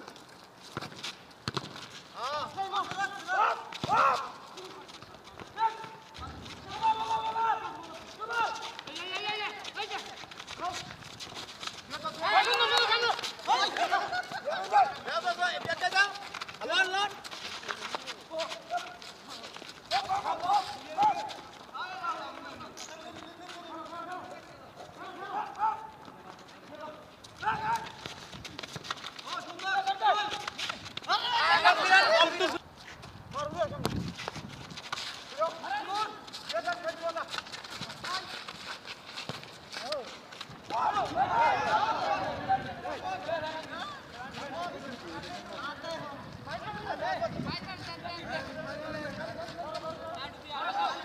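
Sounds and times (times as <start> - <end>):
running footsteps: 0.0 - 51.0
ball kicks on hard ground: 0.7 - 2.0
men shouting: 2.4 - 4.7, 6.6 - 10.1, 11.9 - 17.2, 31.1 - 32.6, 40.7 - 45.9.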